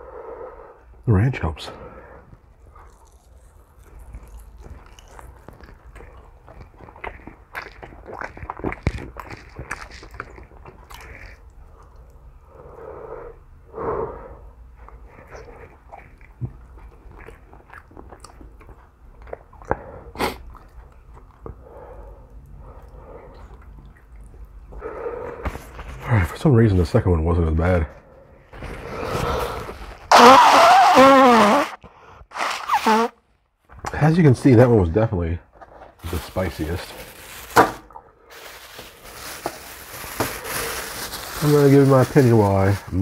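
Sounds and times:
person chewing chicken wing: 0:02.6 - 0:12.1, 0:14.8 - 0:21.6
mouth or breath sound: 0:28.8 - 0:33.1.

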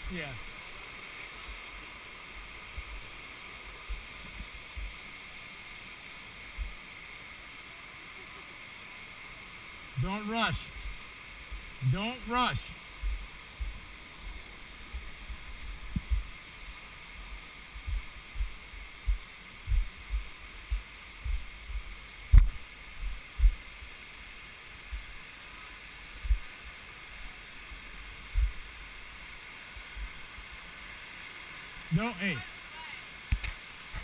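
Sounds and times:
rushing stream: 0:00.0 - 0:34.0.

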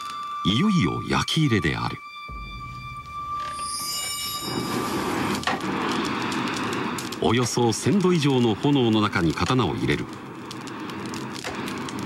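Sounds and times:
charcoal fire crackling: 0:00.0 - 0:12.0.

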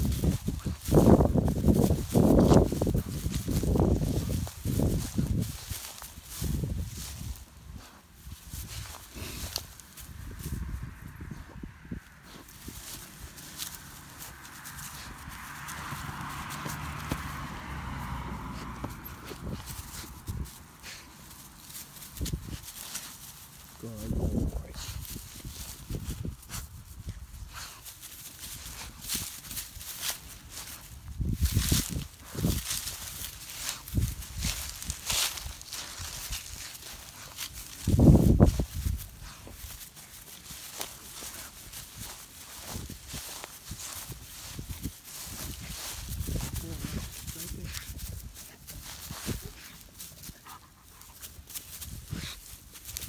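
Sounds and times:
footsteps in dry grass: 0:00.0 - 0:53.0.

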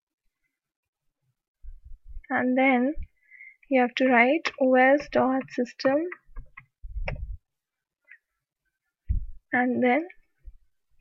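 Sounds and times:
dull low thud: 0:09.1 - 0:09.4.

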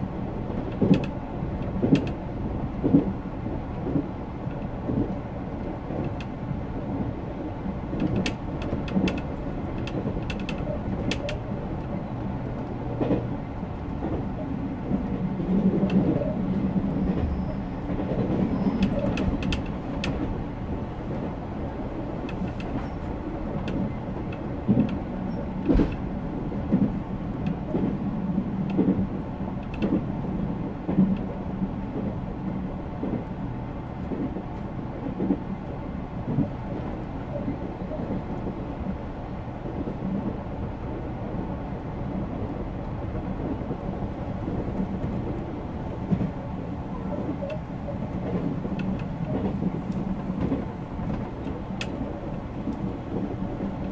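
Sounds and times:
train wheels rumbling on rail: 0:00.0 - 0:53.9.

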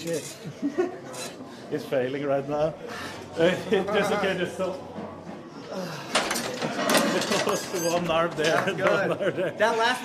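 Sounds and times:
men chattering and laughing: 0:00.0 - 0:01.9, 0:05.7 - 0:10.0.

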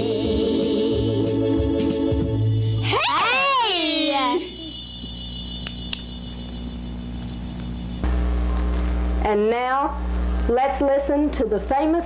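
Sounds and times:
electrical hum: 0:00.0 - 0:12.0
faint high steady tones: 0:00.0 - 0:12.0.

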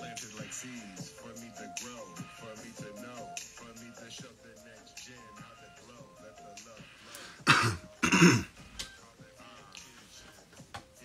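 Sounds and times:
faint background music: 0:00.0 - 0:11.0
man clearing his throat: 0:07.4 - 0:08.6.

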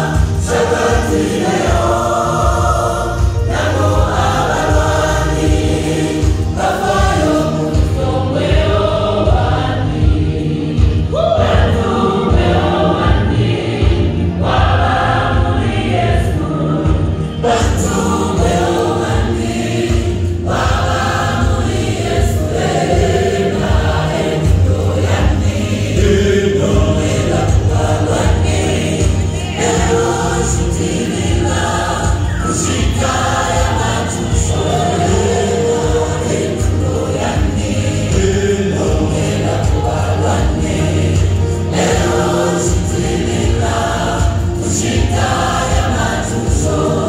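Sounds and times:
gospel choir singing: 0:00.0 - 0:47.0
instrumental backing with bass line: 0:00.0 - 0:47.0.

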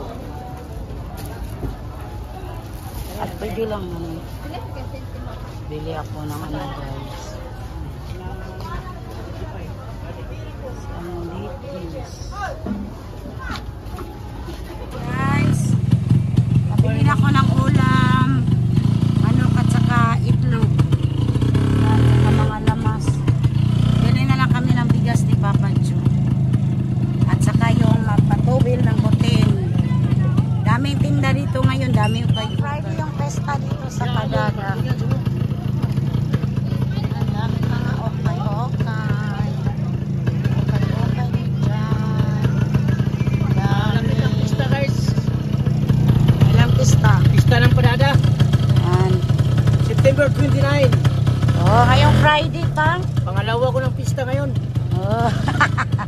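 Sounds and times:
voices: 0:00.0 - 0:56.0
motorcycle engine running: 0:14.2 - 0:56.0.

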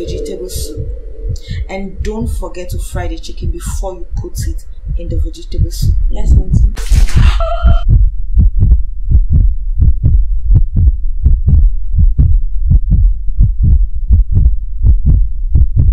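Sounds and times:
bright ringing hit: 0:00.0 - 0:02.3
heartbeat thumps: 0:00.0 - 0:15.9.

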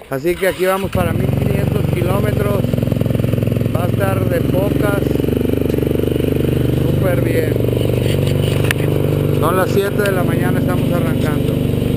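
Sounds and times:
motorcycle engine running: 0:00.2 - 0:11.9.

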